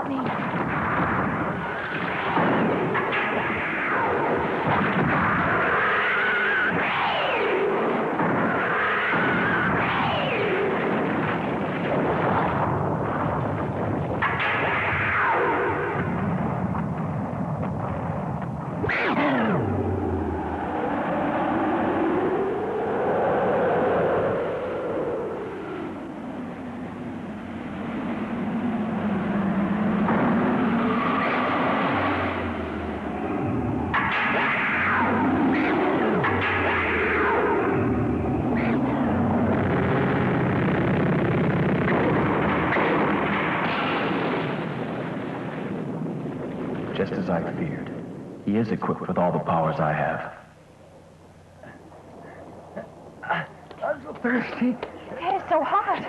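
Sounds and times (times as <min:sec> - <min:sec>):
blasts and rumbling: 0:00.0 - 0:56.0
falling screech: 0:05.1 - 0:10.9
monster roars and shrieks: 0:08.4 - 0:10.8.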